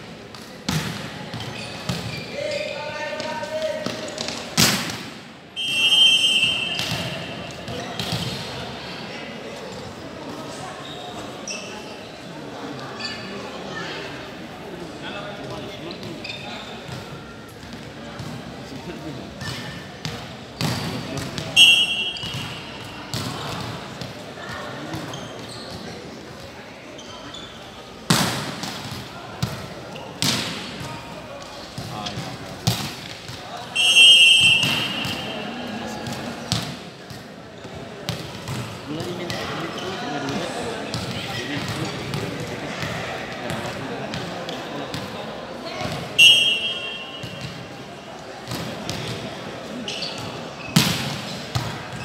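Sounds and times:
players' voices: 0.0 - 52.0
referee's whistle: 5.6 - 7.6, 21.6 - 22.8, 33.8 - 35.5, 46.2 - 47.4.

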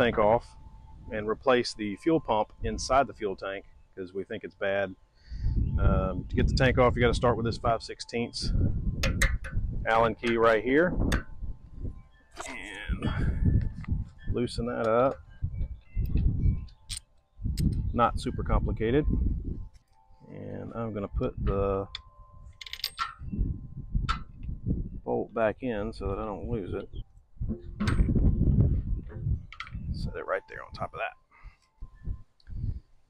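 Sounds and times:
metal tools clinking: 21.4 - 23.3
low rumbling handling noise: 26.0 - 30.2.

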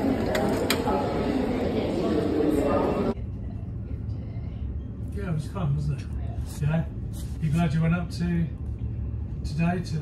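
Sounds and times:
crowd noise: 0.0 - 3.6.

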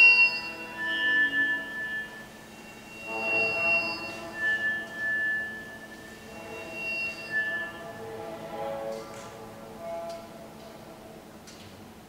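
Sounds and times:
chamber ensemble high sustained tones: 0.0 - 11.4
low sustained notes: 0.0 - 11.5.

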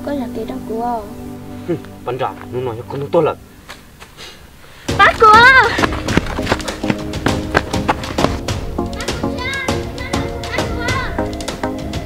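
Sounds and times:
background music with percussion: 4.9 - 12.0.

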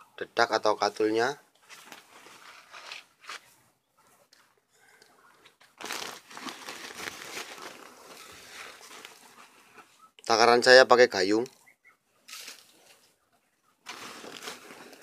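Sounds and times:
plastic sack rustling and crinkling: 5.7 - 9.5, 13.8 - 15.0
dipper scooping dry bran: 13.9 - 15.0.

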